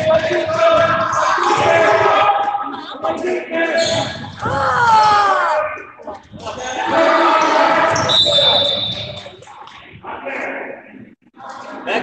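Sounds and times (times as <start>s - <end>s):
voices in a gym: 0.0s - 12.0s
referee's whistle: 7.9s - 9.4s.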